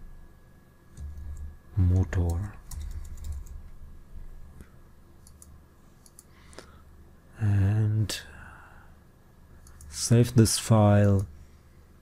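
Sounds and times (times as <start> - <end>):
low hum: 0.0 - 12.0
computer keyboard typing: 1.0 - 1.5, 2.2 - 3.7, 5.2 - 6.3.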